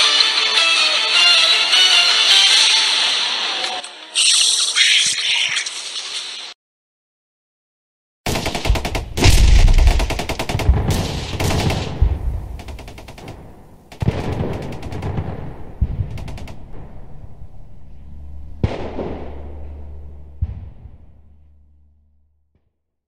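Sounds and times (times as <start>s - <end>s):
rapid gunshots: 8.3s - 17.0s
single heavy gunshots: 8.3s - 17.4s, 18.6s - 19.6s
low hum: 12.0s - 22.6s.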